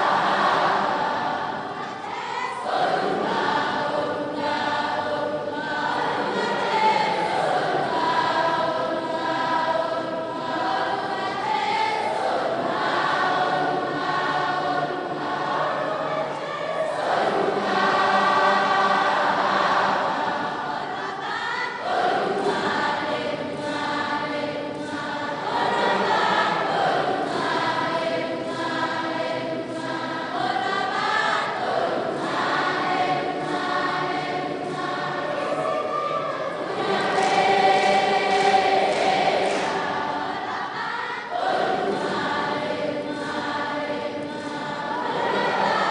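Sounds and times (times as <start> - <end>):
group singing a sacred song: 0.0 - 45.9.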